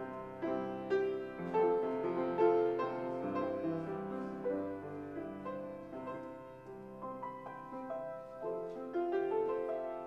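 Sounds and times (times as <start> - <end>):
slow piano music: 0.0 - 10.0.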